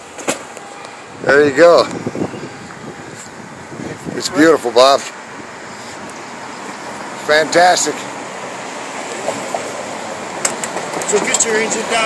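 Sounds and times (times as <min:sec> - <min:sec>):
rushing outdoor background noise: 0:00.0 - 0:12.0.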